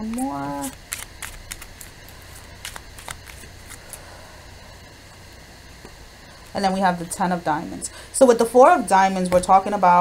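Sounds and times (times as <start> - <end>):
playing cards clicking and flicking: 0.0 - 4.0
low hum: 0.0 - 8.3.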